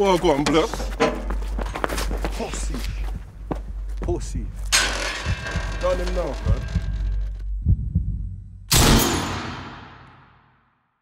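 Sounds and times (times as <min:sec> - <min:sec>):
low heartbeat-like thumps: 0:02.9 - 0:05.8, 0:06.4 - 0:08.7
loud echoing hit: 0:08.7 - 0:10.6.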